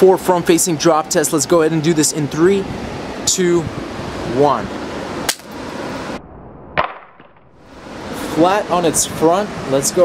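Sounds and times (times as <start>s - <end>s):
wind noise on microphone: 0.0s - 10.0s.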